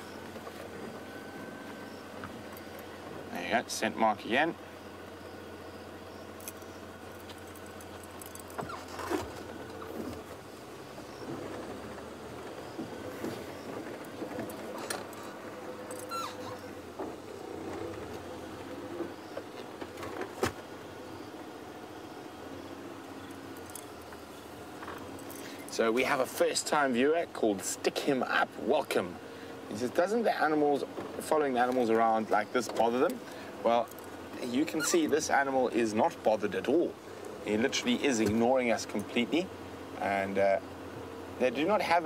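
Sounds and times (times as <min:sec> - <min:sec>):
vehicle engine running: 0:00.0 - 0:42.0.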